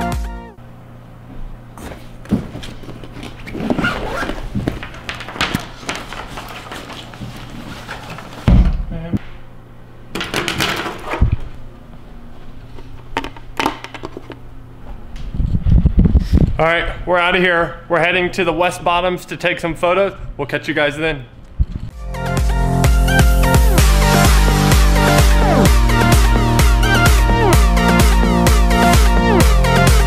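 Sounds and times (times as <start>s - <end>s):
electronic music: 0.0s - 0.6s, 22.0s - 30.0s
heavy thump: 8.5s - 9.0s.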